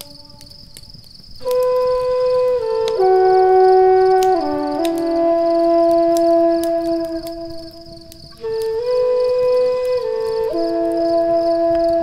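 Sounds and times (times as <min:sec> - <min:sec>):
flute playing long notes: 0:00.0 - 0:00.6, 0:01.4 - 0:12.0
wood fire crackling: 0:00.0 - 0:12.0.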